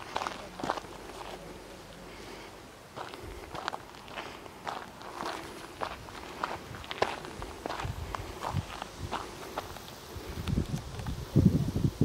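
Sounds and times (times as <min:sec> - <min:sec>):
footsteps on gravelly dirt: 0:00.0 - 0:11.2.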